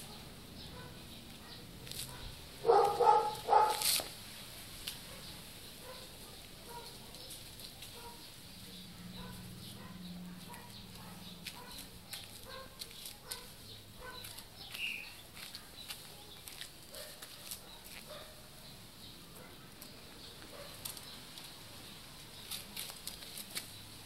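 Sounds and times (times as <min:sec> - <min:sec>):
light clicks and rustles: 0:19.8 - 0:21.6, 0:22.3 - 0:23.8.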